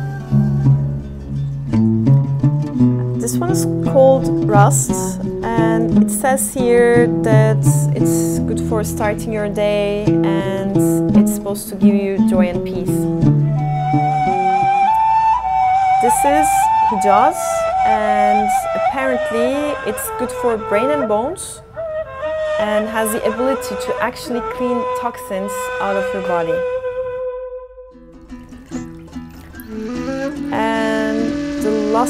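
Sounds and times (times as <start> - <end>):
flute holding long note: 0.0 - 1.0, 13.4 - 28.1, 29.6 - 32.0
plucked string notes: 0.0 - 32.0.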